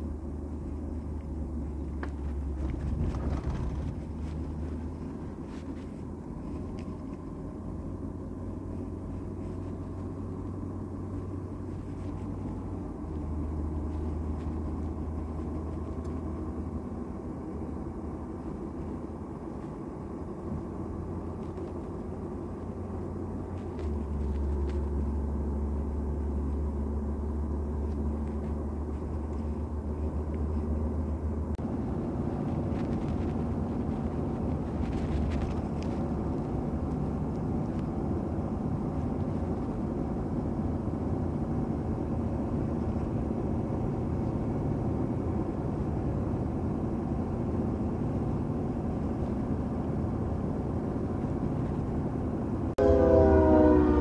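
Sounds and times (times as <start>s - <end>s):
engine and tyre drone: 0.0s - 54.0s
heavy low hum: 0.0s - 54.0s
car horn blowing: 52.8s - 54.0s.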